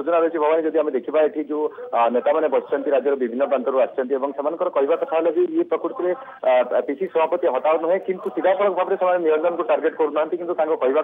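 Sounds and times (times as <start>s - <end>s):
narrator reading news: 0.0s - 11.0s.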